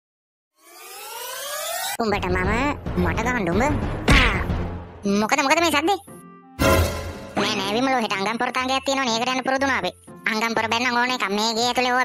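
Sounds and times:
rising sweep sound effect: 0:00.6 - 0:02.0.

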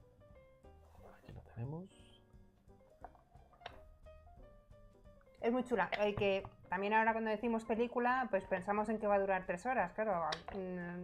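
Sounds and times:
faint plucked background music: 0:00.0 - 0:11.0.

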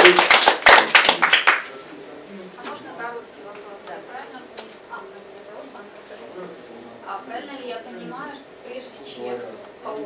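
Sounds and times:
small audience clapping: 0:00.0 - 0:01.8.

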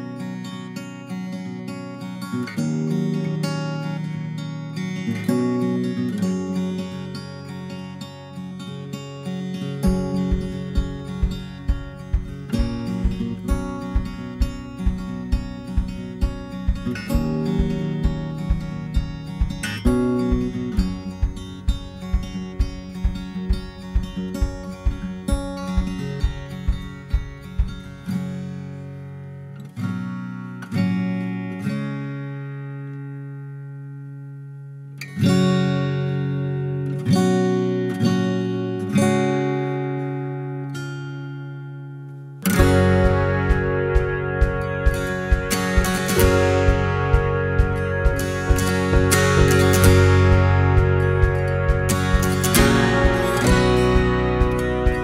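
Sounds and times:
acoustic guitar instrumental: 0:00.0 - 0:55.0.

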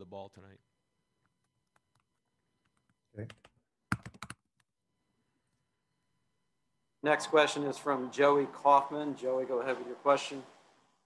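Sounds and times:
computer keyboard typing: 0:03.4 - 0:04.4.

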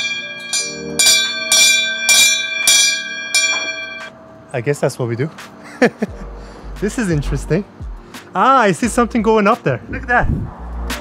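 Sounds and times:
small brass hand bell ringing: 0:00.0 - 0:04.2.

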